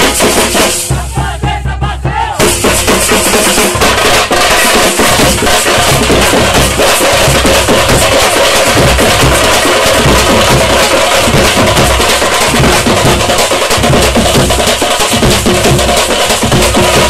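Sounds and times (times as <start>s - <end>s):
frame drums beaten with sticks: 0.0s - 17.0s.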